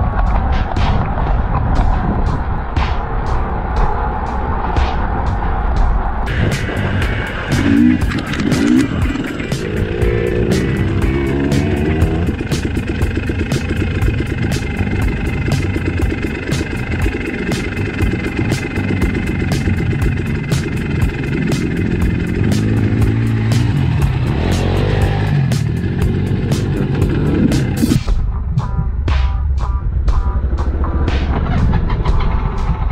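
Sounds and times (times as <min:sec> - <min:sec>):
background music with steady beat: 0:00.0 - 0:32.9
dirt bike engine revving: 0:06.3 - 0:28.1.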